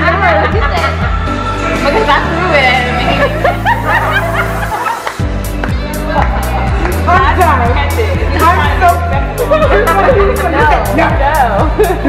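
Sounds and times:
people giggling: 0:00.0 - 0:01.3, 0:03.0 - 0:05.2, 0:09.3 - 0:10.9, 0:11.6 - 0:12.0
background music with bass line: 0:00.0 - 0:12.0.

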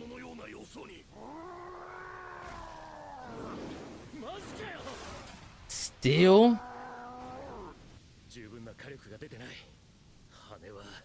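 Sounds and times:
animal-like screeching cry: 0:01.2 - 0:03.6, 0:06.5 - 0:07.8.

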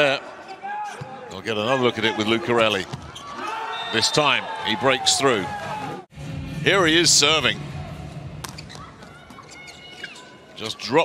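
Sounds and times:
indoor crowd noise: 0:00.0 - 0:11.0
faint high squeaks: 0:08.6 - 0:10.4.

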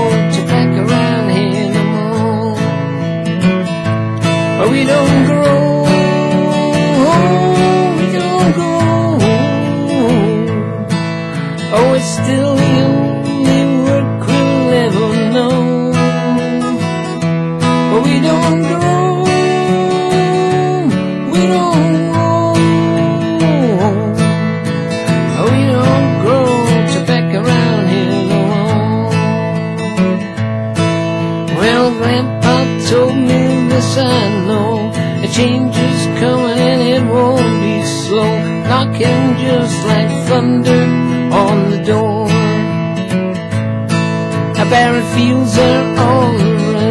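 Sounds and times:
acoustic guitar strumming: 0:00.0 - 0:46.9.

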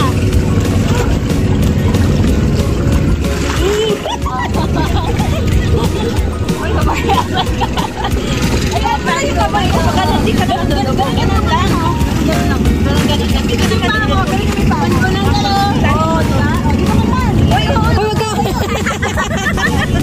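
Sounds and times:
loud low rumble: 0:04.2 - 0:17.8, 0:19.2 - 0:20.0.

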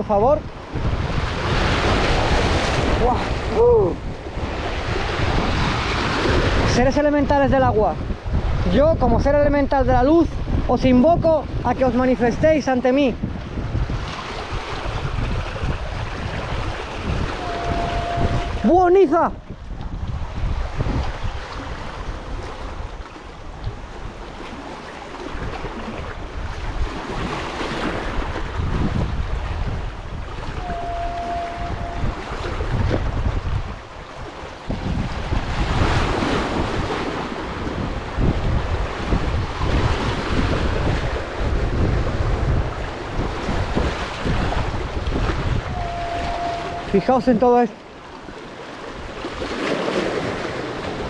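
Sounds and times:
waves splashing over rocks: 0:00.0 - 0:51.0
wind buffeting microphone: 0:00.0 - 0:51.0.

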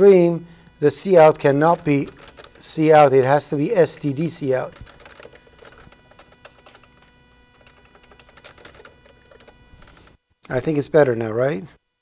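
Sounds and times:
keyboard typing clicks: 0:01.7 - 0:02.6, 0:04.6 - 0:10.2.

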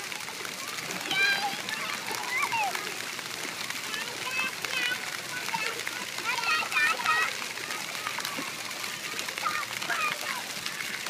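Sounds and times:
pool water splashing: 0:00.0 - 0:11.0
children calling out: 0:00.4 - 0:11.0.

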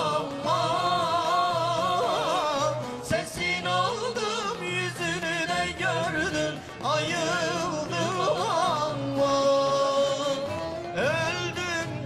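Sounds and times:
person singing folk song: 0:00.0 - 0:12.0
lute ensemble playing: 0:07.1 - 0:12.0.

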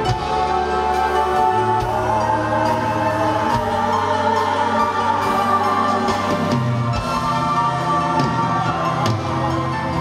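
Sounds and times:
backing singers: 0:00.0 - 0:10.0
drums: 0:00.0 - 0:10.0.

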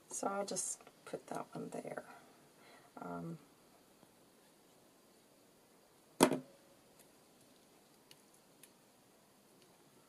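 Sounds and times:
sharp knock: 0:06.2 - 0:06.5.

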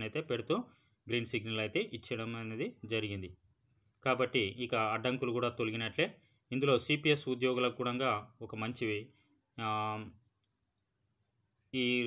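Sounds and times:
man narrating: 0:11.8 - 0:12.0.

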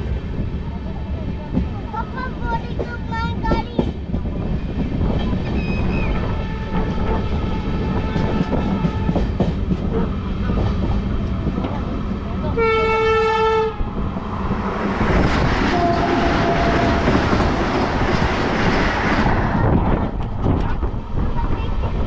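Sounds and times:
freight train passing: 0:00.0 - 0:22.0
train rumble and wheel clatter: 0:00.0 - 0:22.0
train horn: 0:06.1 - 0:10.1, 0:12.5 - 0:13.8, 0:15.6 - 0:17.4
rushing noise: 0:13.7 - 0:22.0.

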